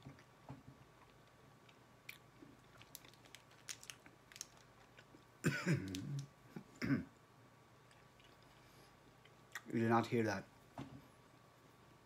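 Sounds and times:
chewing hard candy: 1.0s - 6.3s.

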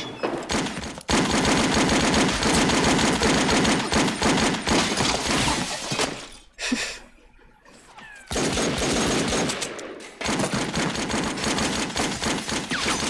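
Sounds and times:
rapid automatic gunfire: 0.4s - 5.7s, 8.3s - 13.0s.

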